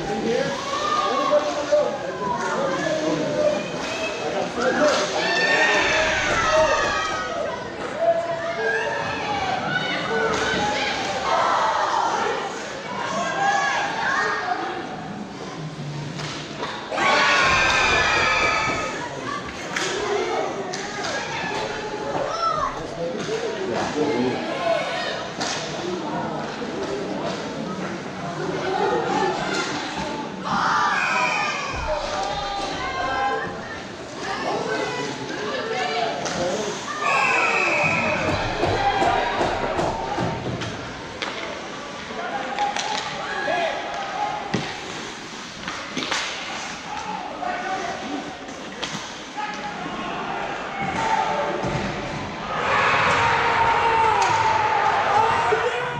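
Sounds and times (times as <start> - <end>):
crowd shouting and cheering: 0.0 - 15.7, 16.6 - 25.5, 28.4 - 45.1, 45.9 - 55.9.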